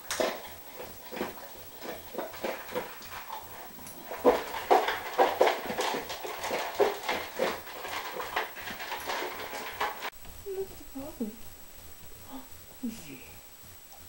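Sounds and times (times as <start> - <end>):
puppy crunching kibble: 0.0 - 10.3.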